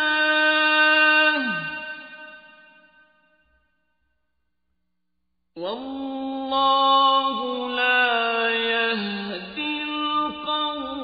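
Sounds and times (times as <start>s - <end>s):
man reciting melodically: 0.0s - 2.4s, 5.6s - 11.0s.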